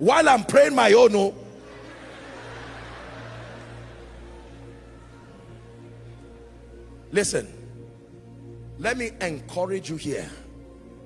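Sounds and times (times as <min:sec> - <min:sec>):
keyboard music with sustained tones: 0:00.0 - 0:11.0.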